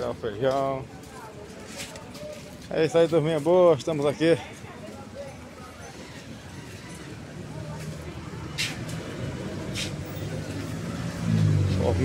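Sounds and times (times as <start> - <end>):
hum of passing vehicles: 5.8 - 12.0.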